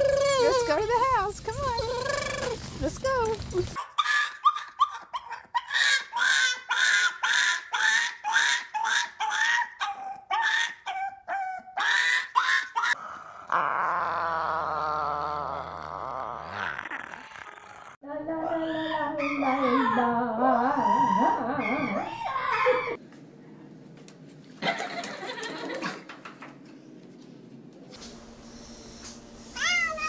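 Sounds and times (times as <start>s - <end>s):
puppy yipping: 8.4s - 13.0s.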